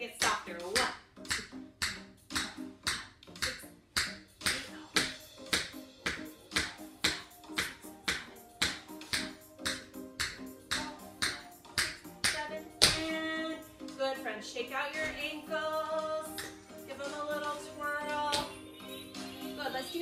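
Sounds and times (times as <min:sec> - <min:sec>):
background music: 0:00.0 - 0:20.0
tap shoe tapping on hard floor: 0:00.2 - 0:13.0.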